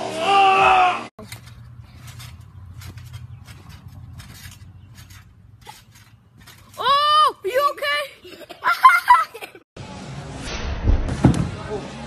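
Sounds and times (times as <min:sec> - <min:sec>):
trampoline springs clinking: 0:01.2 - 0:08.8.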